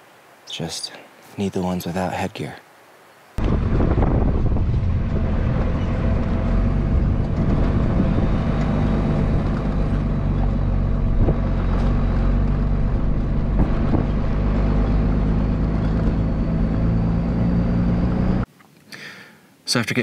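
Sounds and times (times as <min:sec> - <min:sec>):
road noise: 0:02.9 - 0:18.5
truck engine drone: 0:03.4 - 0:18.5.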